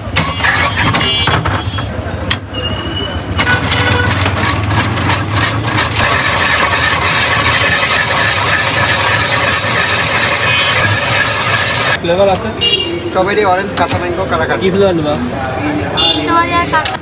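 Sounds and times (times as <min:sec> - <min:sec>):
ice shaver scraping ice: 0:03.4 - 0:12.0.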